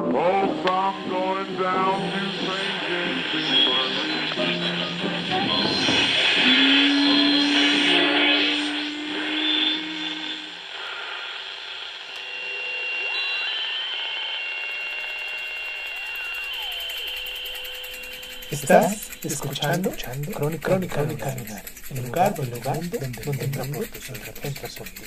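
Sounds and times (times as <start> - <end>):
gliding synthesized tones: 0.0 - 10.7, 12.3 - 25.0.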